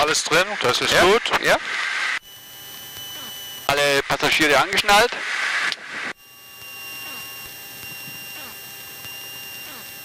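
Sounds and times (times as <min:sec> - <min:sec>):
electrical hum and whine: 0:00.0 - 0:10.0.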